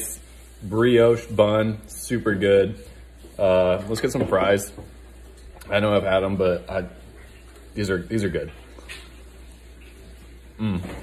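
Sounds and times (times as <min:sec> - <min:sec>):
man humming mmm: 0:10.6 - 0:11.0.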